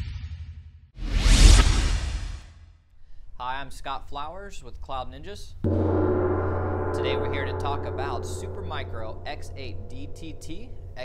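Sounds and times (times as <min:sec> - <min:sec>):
deep low rumble: 0:05.7 - 0:11.0
whoosh: 0:05.7 - 0:11.0.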